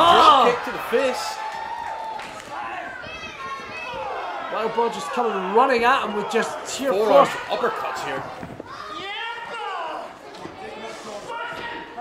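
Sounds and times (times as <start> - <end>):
voices echoing in a hall: 0.0 - 12.0.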